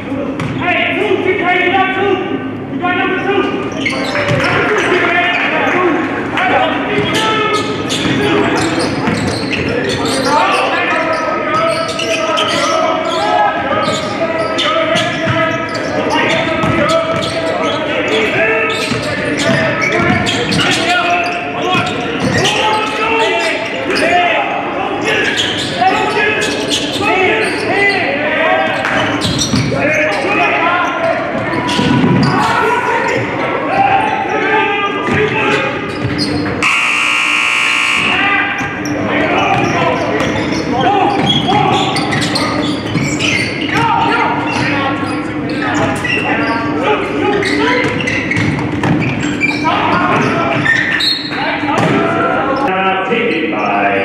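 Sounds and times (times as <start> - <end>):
players calling out: 0.0 - 54.0
buzzer: 36.6 - 38.2.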